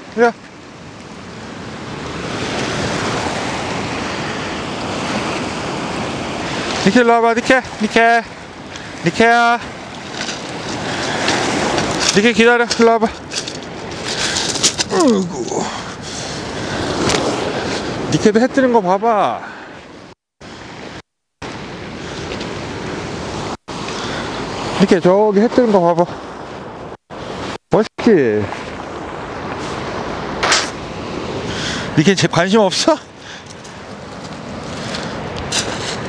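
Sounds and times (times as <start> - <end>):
surf on a pebble beach: 0.0 - 36.0
surf breaking on pebble beach: 1.7 - 15.0.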